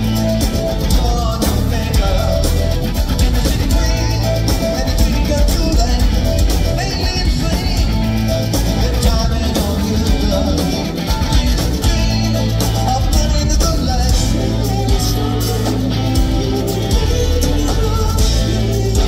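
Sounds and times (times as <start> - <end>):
bass: 0.0 - 19.0
drums: 0.0 - 19.0
electric guitar: 0.0 - 19.0
male lead vocal: 0.0 - 19.0.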